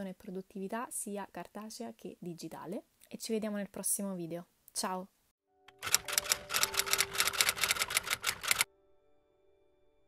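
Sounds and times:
typewriter keystroke clicks: 5.8s - 8.6s.

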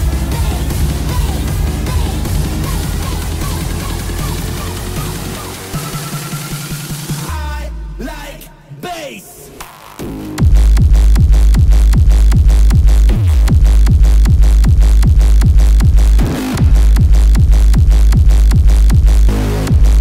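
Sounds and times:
distorted hardstyle kick drum: 0.0s - 8.0s, 9.6s - 20.0s.

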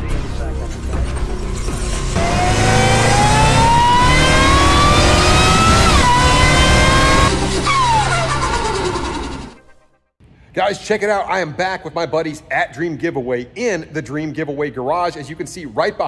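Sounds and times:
background music: 0.0s - 16.0s
car engine accelerating: 1.3s - 9.8s.

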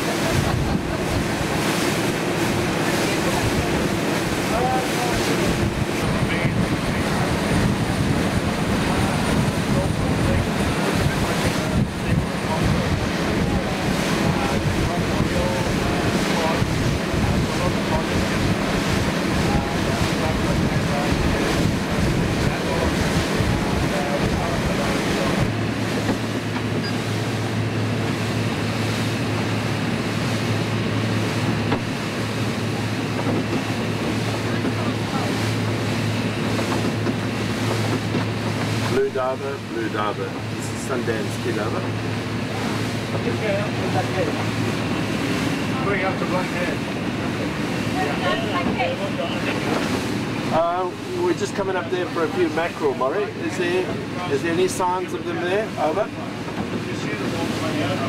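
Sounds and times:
wind buffeting microphone: 0.0s - 54.4s
boat engine drone: 0.0s - 58.0s
water rushing along hull: 0.0s - 58.0s.

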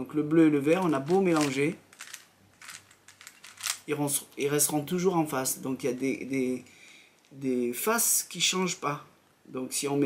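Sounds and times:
puzzle cube layers clicking: 0.8s - 3.8s.

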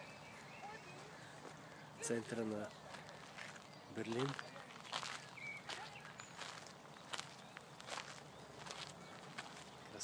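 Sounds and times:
footsteps walking: 2.2s - 9.8s.

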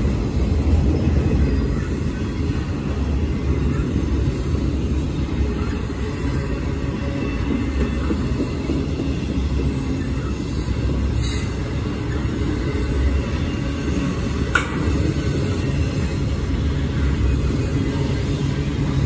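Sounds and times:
freight train wheels rumbling: 0.0s - 19.0s.

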